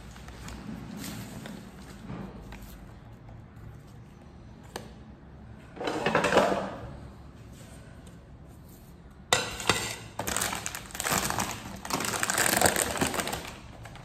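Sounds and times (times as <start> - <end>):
plastic packet crinkling: 10.2 - 14.0.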